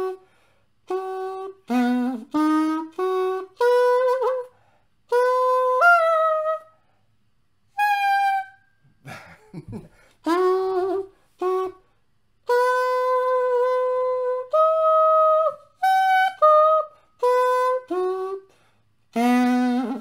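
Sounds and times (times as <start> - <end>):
reedy pocket sax notes: 0.0 - 6.7, 10.2 - 20.0.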